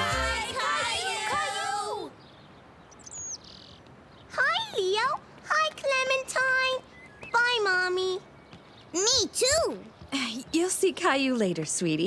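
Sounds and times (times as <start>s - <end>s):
high bird chirp: 2.2s - 4.4s, 6.8s - 9.2s.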